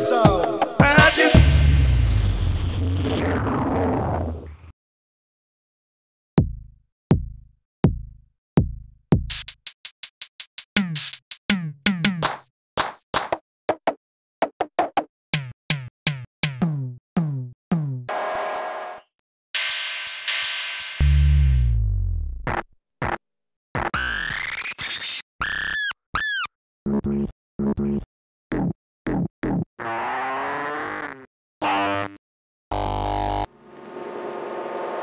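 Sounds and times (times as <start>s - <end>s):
synthesized ride cymbal strikes: 19.6s - 21.3s.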